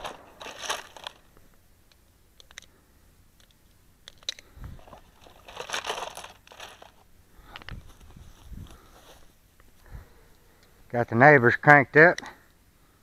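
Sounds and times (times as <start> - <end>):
handling rustling and crunching: 0.0 - 1.7, 3.4 - 10.7.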